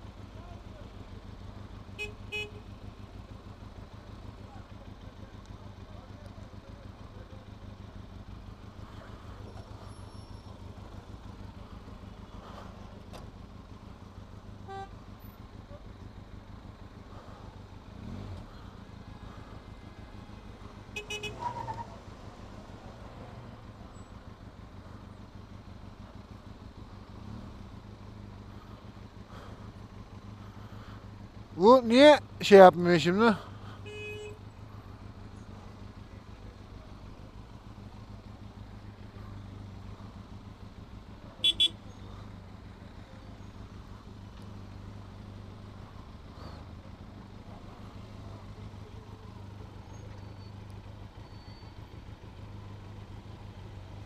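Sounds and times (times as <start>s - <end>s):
motorcycle engine idling: 0.0s - 54.0s
vehicle horn toots: 1.9s - 2.7s, 14.6s - 15.0s, 20.9s - 21.8s, 33.8s - 34.5s, 41.4s - 42.0s.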